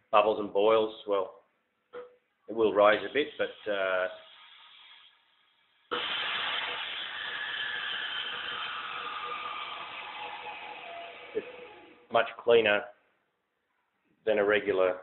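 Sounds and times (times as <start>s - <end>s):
vacuum packing machine hiss: 5.9s - 11.9s.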